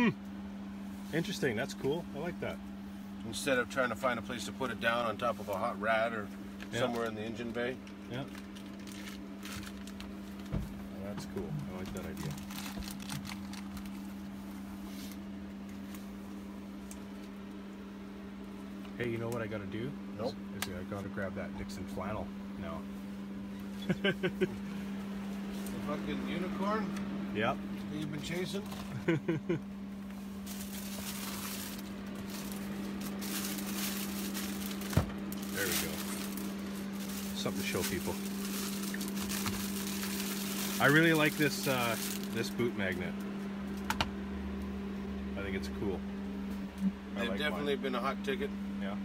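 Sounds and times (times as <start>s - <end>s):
low machine hum: 0.0s - 49.0s.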